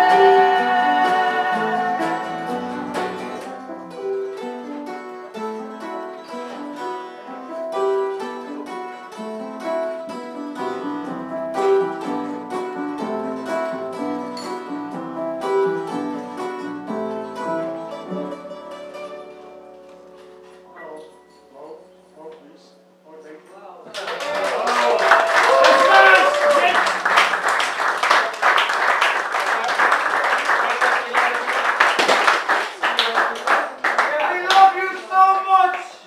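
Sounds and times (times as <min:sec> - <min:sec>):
live band instrumental: 0:00.0 - 0:20.6
picked guitar notes: 0:00.0 - 0:22.3.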